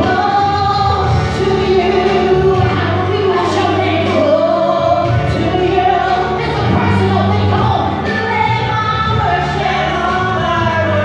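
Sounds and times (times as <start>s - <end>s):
musical accompaniment: 0.0s - 11.0s
woman singing into a microphone: 0.0s - 11.0s.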